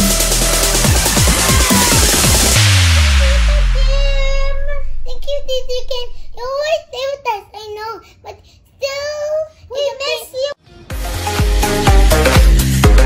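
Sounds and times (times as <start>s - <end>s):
electronic dance music: 0.0s - 6.0s, 10.9s - 13.0s
girl singing: 3.0s - 10.5s.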